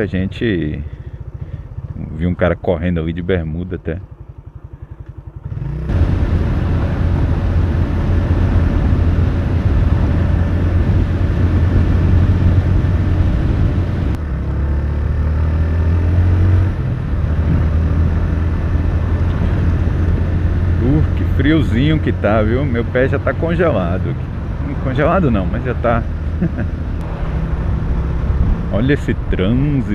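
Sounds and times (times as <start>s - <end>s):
motorcycle engine: 0.0s - 29.9s
wind and road noise: 0.0s - 29.9s.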